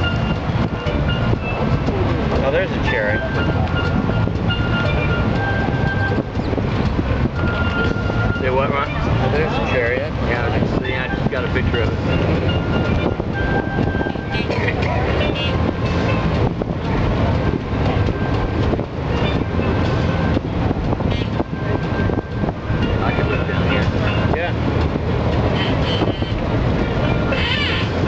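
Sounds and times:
boat engine rumbling: 0:00.0 - 0:28.0.

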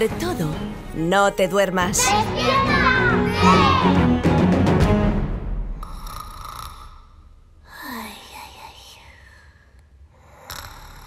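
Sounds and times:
music: 0:00.0 - 0:05.8
cartoon snore sound effect: 0:05.8 - 0:07.2.

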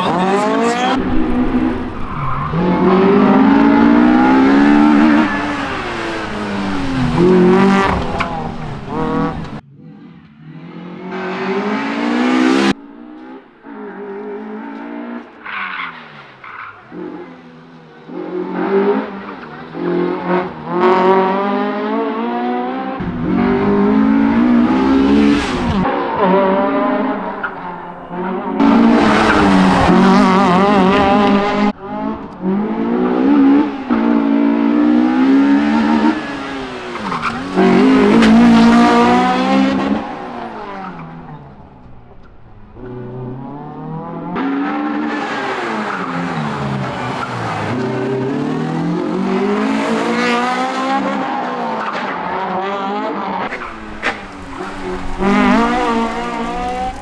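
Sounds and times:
rally car engine revving hard: 0:00.0 - 0:09.6, 0:18.0 - 0:41.4, 0:42.8 - 0:57.0.

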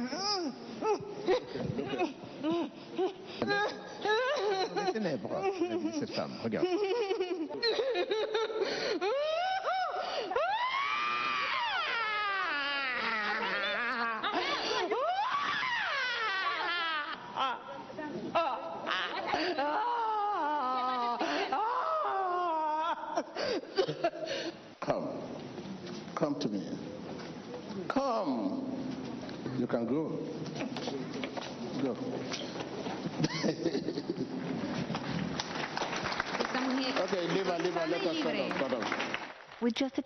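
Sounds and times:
woman screaming and wailing: 0:09.0 - 0:23.3.

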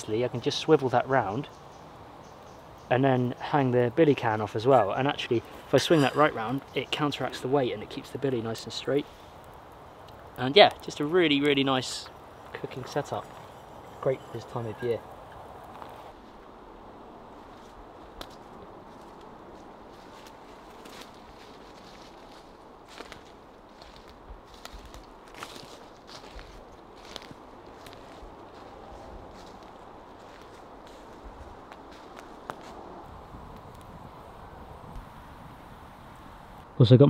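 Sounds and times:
low hiss: 0:00.0 - 0:37.0
light snaps and rustles: 0:17.4 - 0:32.8, 0:33.5 - 0:34.0.

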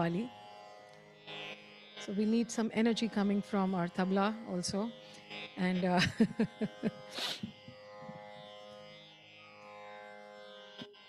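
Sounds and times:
instrumental drone of held tones: 0:00.0 - 0:11.0.

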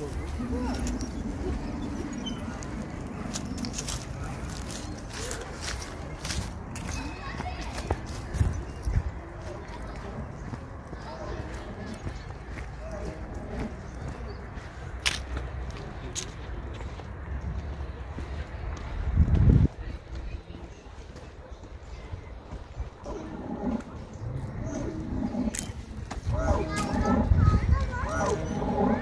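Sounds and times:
faint distant voices: 0:00.0 - 0:29.0
footsteps on paved path: 0:00.0 - 0:29.0
wind rumble on microphone: 0:07.8 - 0:10.9, 0:18.5 - 0:20.6, 0:22.0 - 0:29.0.

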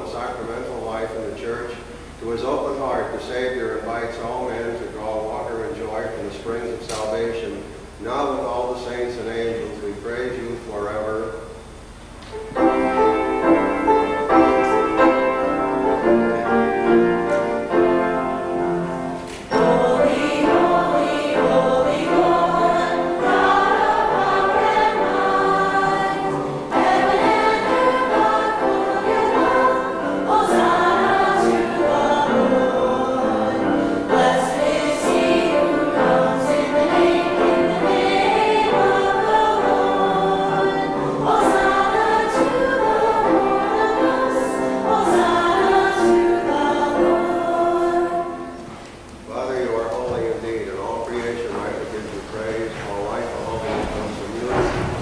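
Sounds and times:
choir singing a hymn: 0:12.4 - 0:48.8.

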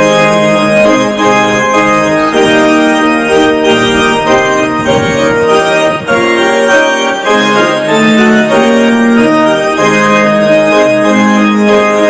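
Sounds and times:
organ chords: 0:00.0 - 0:12.0.

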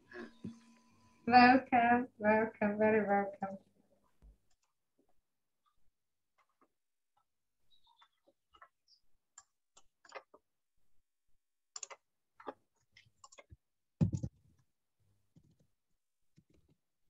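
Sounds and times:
faint clicks and taps: 0:04.1 - 0:10.5, 0:11.7 - 0:14.4.

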